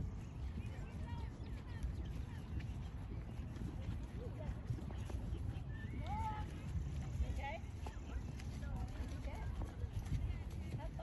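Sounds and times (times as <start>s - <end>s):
horse hoofbeats on grass: 0.0s - 11.0s.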